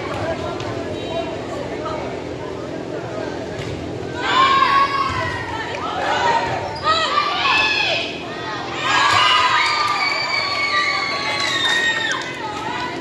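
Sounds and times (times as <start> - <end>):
girls shouting and cheering: 4.2 - 13.0.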